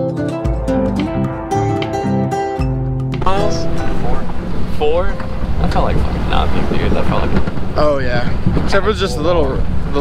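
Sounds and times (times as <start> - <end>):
truck engine rumble: 3.2 - 10.0
voices: 3.2 - 10.0
wind buffeting microphone: 3.2 - 10.0.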